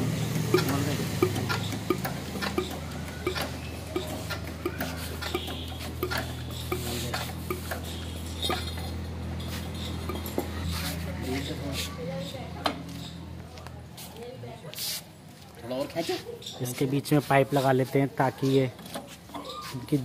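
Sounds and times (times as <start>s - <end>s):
fuel injector clicking: 0.0s - 9.0s.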